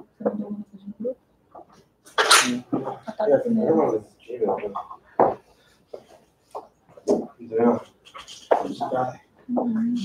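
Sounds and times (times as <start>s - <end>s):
person sneezing: 2.2s - 2.7s.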